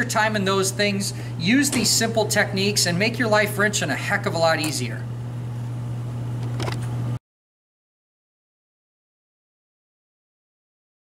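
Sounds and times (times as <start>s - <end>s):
low hum of workshop machinery: 0.0s - 7.2s.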